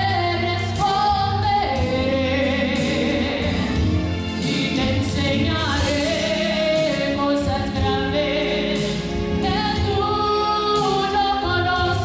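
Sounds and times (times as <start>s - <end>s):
musical accompaniment: 0.0s - 12.0s
woman singing gospel song: 0.0s - 12.0s.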